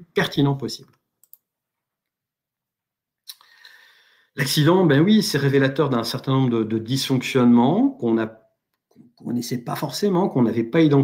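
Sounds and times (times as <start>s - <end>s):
faint clicks: 0.9s - 1.4s.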